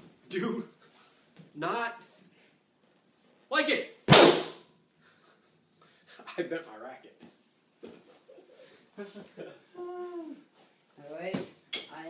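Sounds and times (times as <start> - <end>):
racket smacking hard: 4.1 - 4.6.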